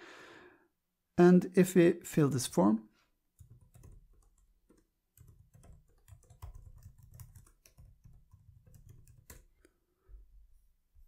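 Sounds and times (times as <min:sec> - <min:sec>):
typing on computer keyboard: 0:03.4 - 0:09.5.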